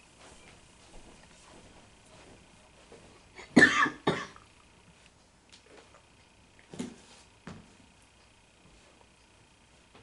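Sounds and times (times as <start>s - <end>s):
person coughing: 3.4s - 4.4s.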